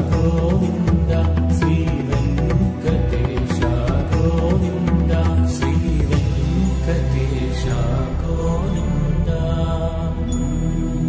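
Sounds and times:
chanted vocal line: 0.0 - 11.0
low drone: 0.0 - 11.0.

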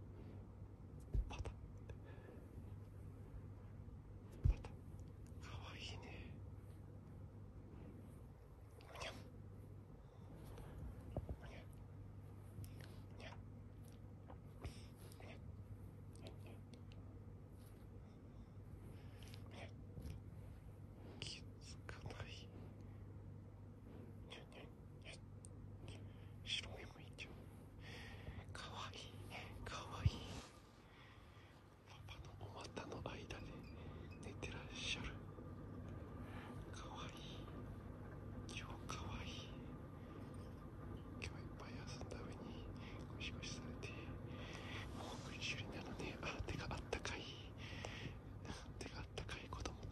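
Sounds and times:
low room hum: 0.0 - 49.9
soft whisper: 0.0 - 49.9.

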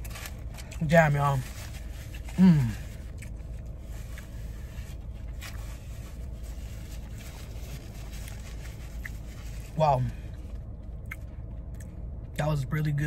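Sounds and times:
low background hum: 0.0 - 13.0
person chewing: 2.1 - 4.4, 8.2 - 9.3, 10.8 - 12.0.

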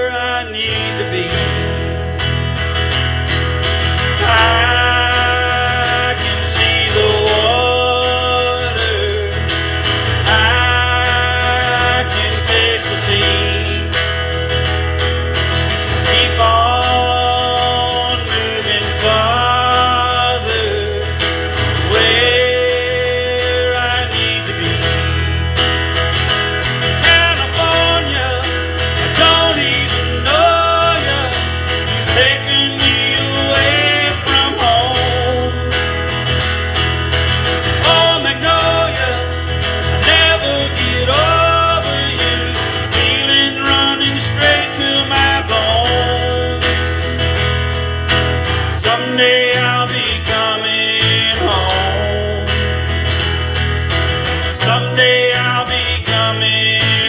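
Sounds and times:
acoustic guitar strummed: 0.0 - 57.0.

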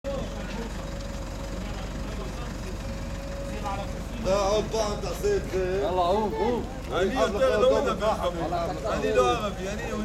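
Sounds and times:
low outdoor rumble: 0.1 - 10.0.

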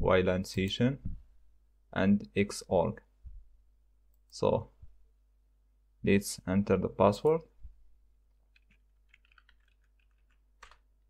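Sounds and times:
typing on computer keyboard: 8.5 - 10.8.

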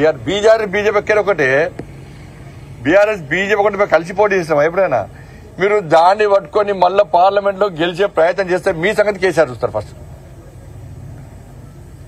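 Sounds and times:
outdoor ambient rumble: 0.0 - 12.0.

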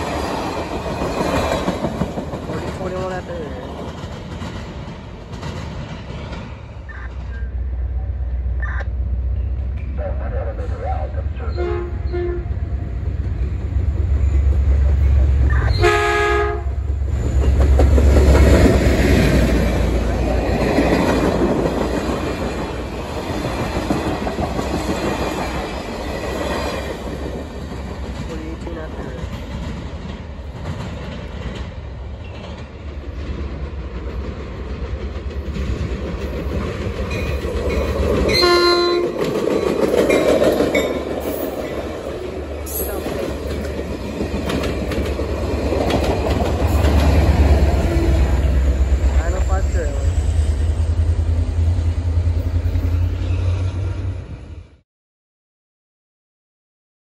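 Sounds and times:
passenger train rumbling past: 0.0 - 54.8
train horn blast: 11.4 - 12.6, 15.5 - 16.8, 38.3 - 39.2.

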